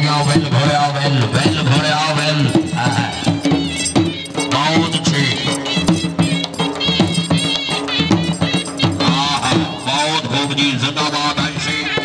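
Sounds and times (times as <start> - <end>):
dhol drums beating: 0.0 - 12.0
shehnai melody: 0.0 - 12.0.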